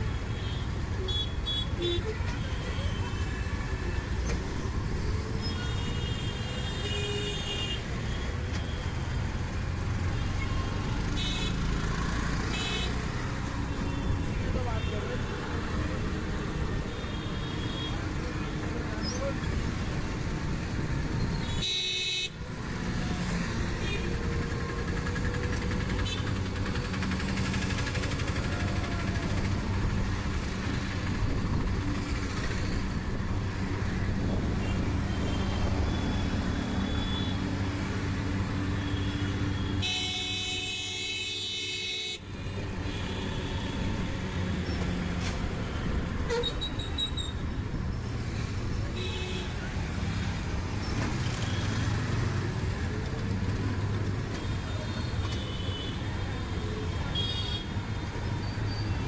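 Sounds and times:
traffic engines humming: 0:00.0 - 0:59.0
car horns honking: 0:39.0 - 0:42.2.

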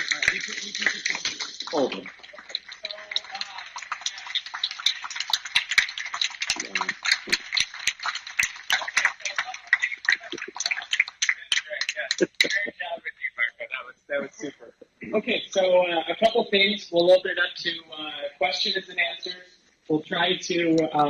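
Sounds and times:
audience applauding: 0:00.0 - 0:12.7
voices among claps: 0:00.0 - 0:12.8.

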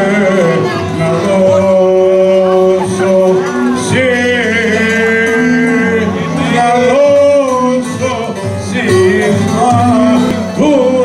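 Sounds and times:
man singing into a microphone: 0:00.0 - 0:11.0.

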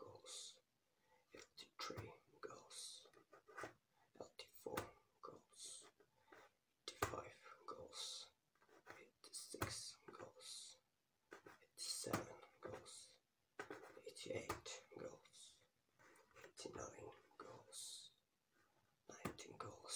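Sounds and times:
man whispering: 0:00.0 - 0:18.2, 0:19.0 - 0:19.9.

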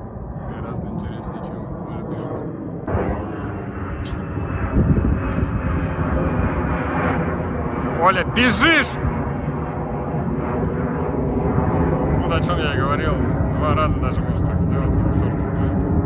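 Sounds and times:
airplane engine drone: 0:00.0 - 0:16.0.

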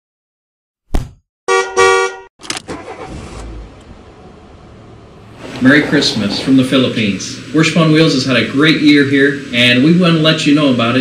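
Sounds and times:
car horn honk: 0:01.5 - 0:02.3
low rumble into hiss: 0:03.5 - 0:11.0.

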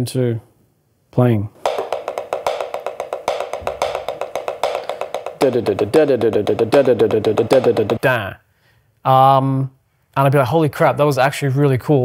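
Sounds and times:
drumsticks on a practice pad: 0:01.6 - 0:08.0
lower pitched drum part: 0:01.6 - 0:08.0.

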